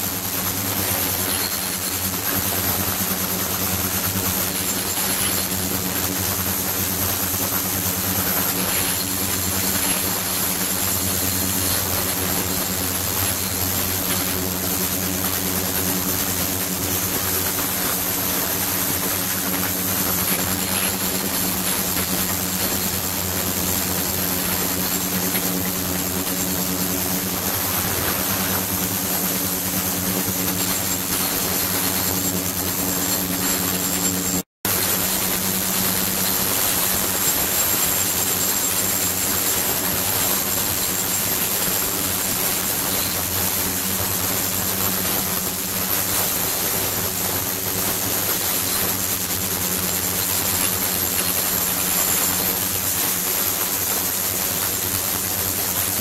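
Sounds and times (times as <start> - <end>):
ultrasonic tank hissing water: 0.0 - 53.9
low multi-tone hum: 0.0 - 55.9
faint high whine: 0.0 - 56.0.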